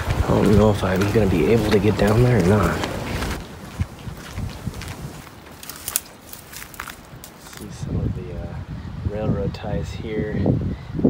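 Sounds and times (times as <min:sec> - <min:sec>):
footsteps in sandals: 0:00.0 - 0:07.7.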